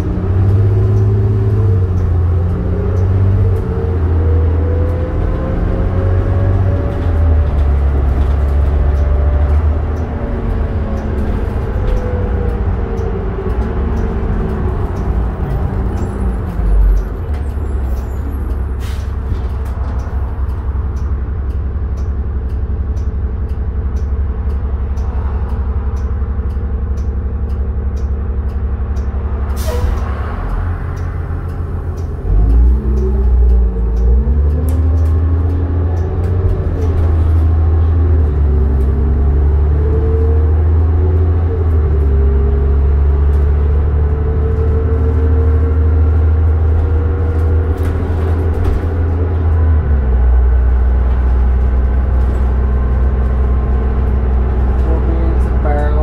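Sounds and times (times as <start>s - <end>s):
bus diesel engine: 0.0s - 56.0s.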